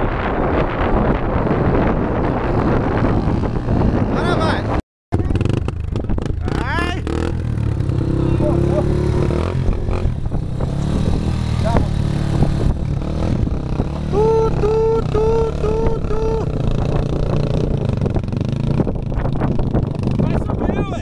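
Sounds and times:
dirt bike engines revving: 0.5 - 21.0
person shouting: 14.1 - 16.5.

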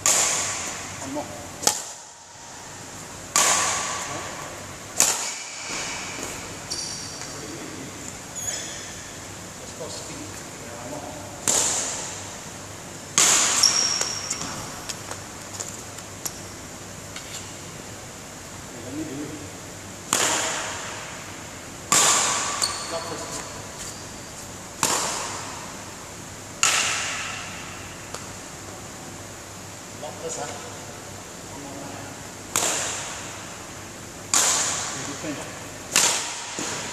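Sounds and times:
badminton racket hitting shuttlecock: 0.0 - 1.0, 1.6 - 2.1, 3.3 - 7.2, 11.4 - 12.3, 13.1 - 15.2, 21.9 - 22.7, 24.8 - 25.6, 26.6 - 27.6, 32.5 - 33.3, 34.3 - 35.0, 35.9 - 36.9.

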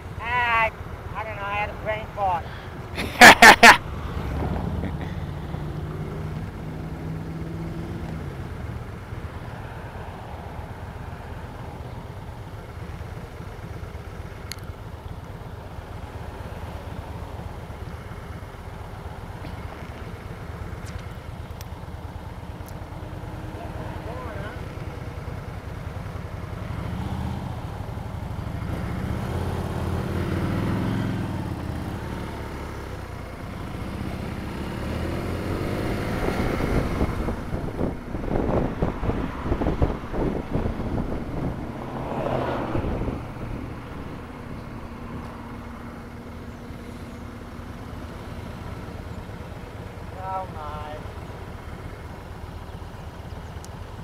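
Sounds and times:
traffic: 0.0 - 54.0
motorcycle engine: 1.8 - 54.0
wind buffeting microphone: 35.8 - 45.2.

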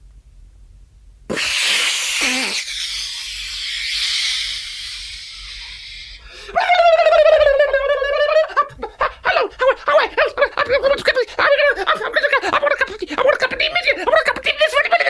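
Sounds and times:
long breathy vocal hiss: 1.3 - 6.6.

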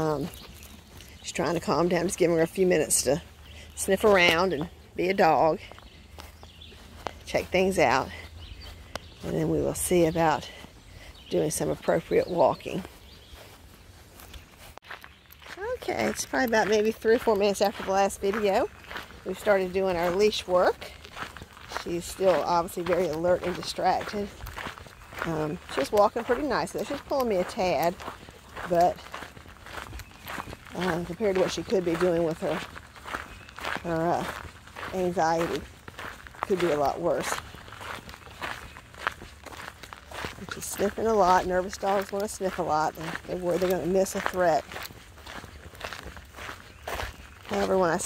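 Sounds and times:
footsteps on grass: 0.0 - 48.0.

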